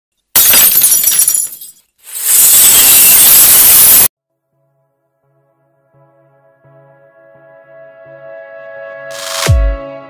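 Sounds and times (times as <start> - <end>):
glass shattering: 0.3 - 2.8
glass shards tinkling: 0.4 - 2.4.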